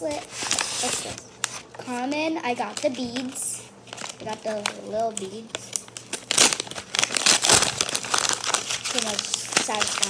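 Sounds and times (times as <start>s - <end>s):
paper wrapping crinkling: 0.0s - 10.0s.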